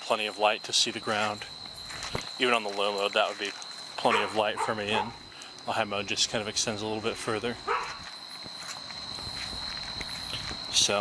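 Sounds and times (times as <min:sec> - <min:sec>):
footsteps on grass: 0:01.0 - 0:04.6, 0:07.6 - 0:11.0.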